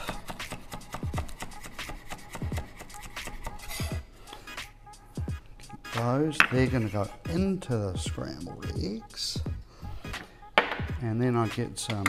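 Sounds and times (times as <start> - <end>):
background music with deep beat: 0.0 - 12.0.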